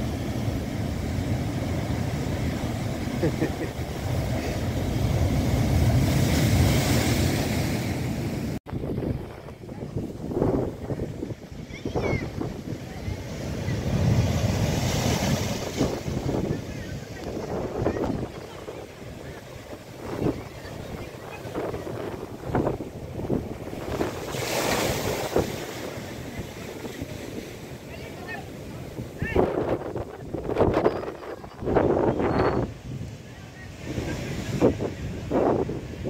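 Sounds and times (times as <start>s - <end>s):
surf crashing on seawall: 0.0s - 36.0s
wind buffeting microphone: 0.0s - 36.0s.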